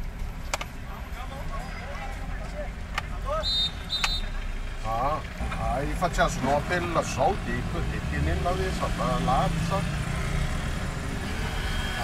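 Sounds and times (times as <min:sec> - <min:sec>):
car engine and road rumble: 0:00.0 - 0:12.0
man talking: 0:04.8 - 0:09.9.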